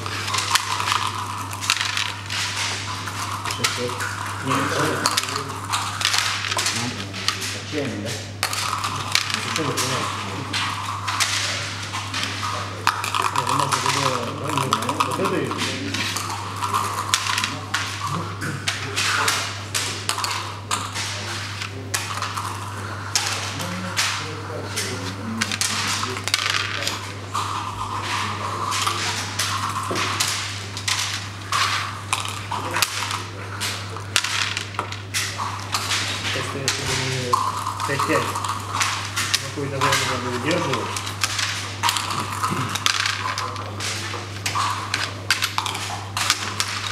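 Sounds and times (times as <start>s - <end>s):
checkers clacking on wooden board: 0.0s - 7.6s, 8.4s - 12.3s, 12.9s - 19.4s, 25.0s - 46.9s
steady low hum: 0.0s - 46.9s.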